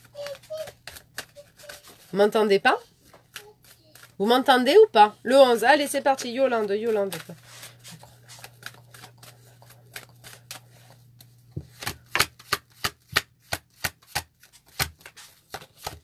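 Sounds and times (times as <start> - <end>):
cards laid on a table: 0.0 - 2.1, 2.8 - 4.2, 6.2 - 16.0.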